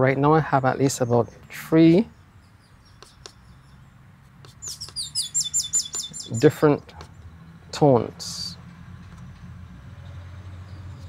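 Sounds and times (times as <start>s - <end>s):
songbird singing: 0.0s - 11.0s.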